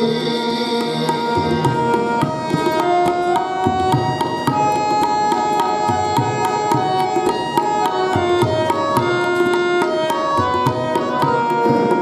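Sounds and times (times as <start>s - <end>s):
harmonium melody: 0.0s - 12.0s
tabla rhythm: 0.0s - 12.0s.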